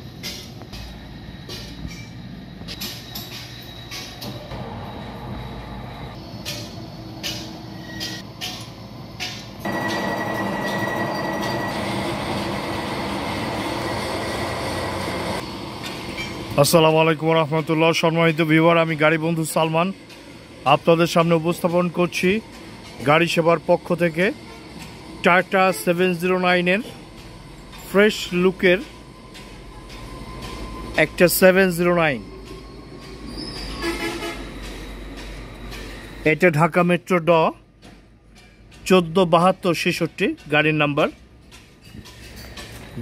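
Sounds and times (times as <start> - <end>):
machinery running: 0.0 - 37.4
thin high whine: 9.6 - 20.0.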